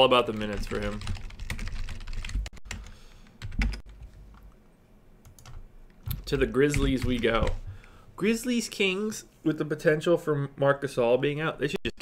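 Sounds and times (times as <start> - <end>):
typing on computer keyboard: 0.3 - 4.0.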